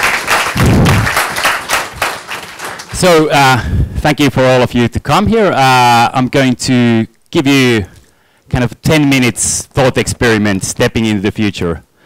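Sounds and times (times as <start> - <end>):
audience applauding: 0.0 - 3.3.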